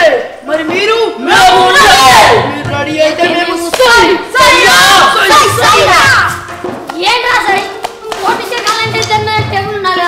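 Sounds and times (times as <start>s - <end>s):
sharp hand claps: 3.6s - 4.1s, 6.5s - 9.4s
children calling out: 4.0s - 6.4s.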